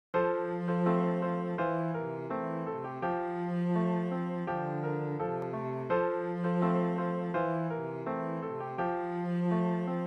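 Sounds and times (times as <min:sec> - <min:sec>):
slow keyboard music: 0:00.2 - 0:10.0.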